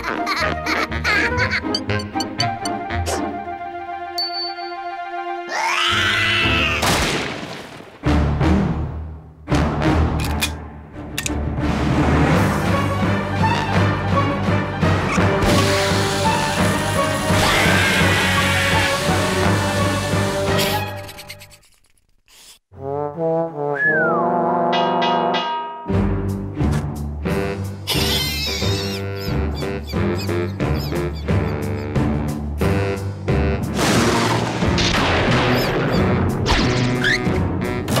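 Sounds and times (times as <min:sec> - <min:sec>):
cartoon character laughing: 0:00.0 - 0:02.0, 0:20.6 - 0:22.5, 0:27.9 - 0:32.0
background music: 0:00.0 - 0:07.2, 0:07.9 - 0:21.2, 0:22.8 - 0:38.0
rising whistling tone: 0:23.8 - 0:24.3
crash sound effect: 0:33.7 - 0:36.9.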